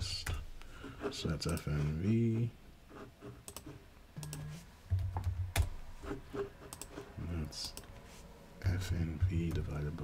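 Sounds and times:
keyboard keystrokes and clicks: 0:03.5 - 0:05.8.

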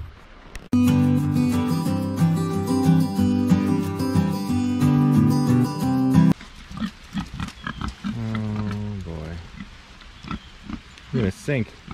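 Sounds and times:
strummed acoustic guitar: 0:00.8 - 0:06.4
pigs grunting: 0:06.7 - 0:11.9.

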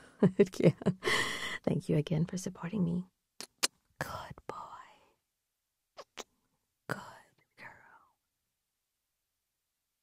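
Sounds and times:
woman whispering: 0:03.6 - 0:05.2, 0:06.9 - 0:08.2.

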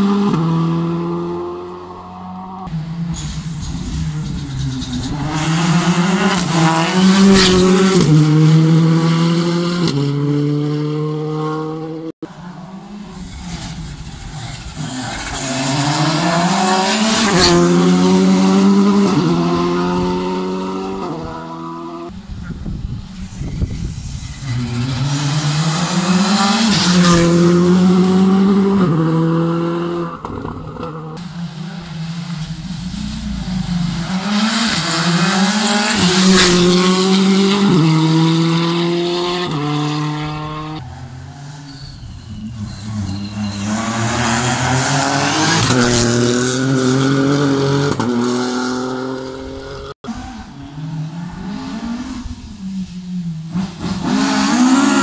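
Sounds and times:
rally cars at full throttle: 0:00.0 - 0:55.0.

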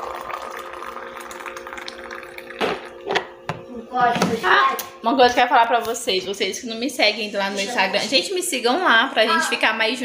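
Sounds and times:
coffee pouring into mug: 0:00.0 - 0:03.6.

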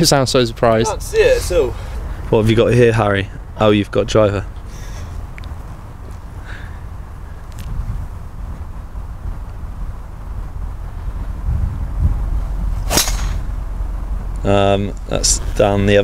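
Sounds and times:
low background rumble: 0:00.0 - 0:16.0
golf driver striking ball: 0:12.8 - 0:13.5.

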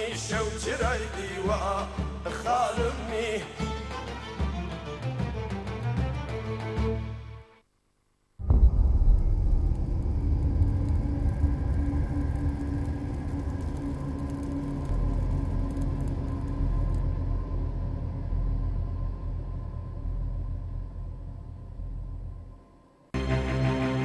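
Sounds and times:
deep sustained rumble: 0:08.4 - 0:23.0.

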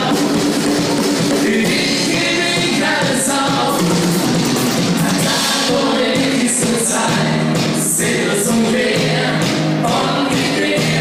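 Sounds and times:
drums: 0:00.0 - 0:11.0.

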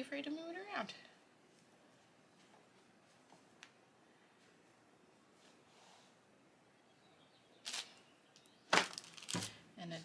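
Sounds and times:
hoop frames snapping together: 0:08.7 - 0:09.6.

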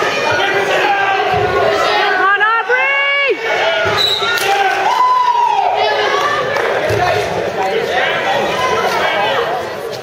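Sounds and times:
spectators shouting: 0:00.0 - 0:07.0.

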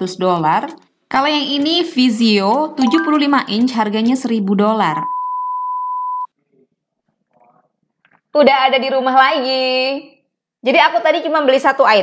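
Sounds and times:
electronic beep tone: 0:02.8 - 0:03.6, 0:04.9 - 0:06.3.

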